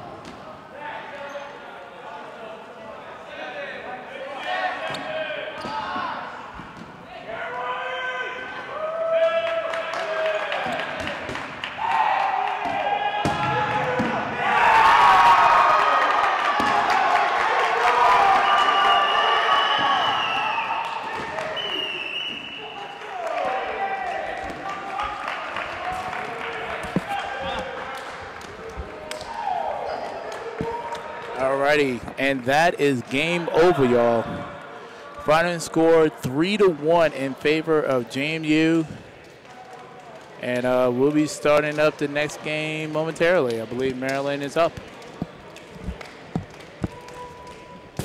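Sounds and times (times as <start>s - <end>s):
players shouting: 7.2s - 32.0s.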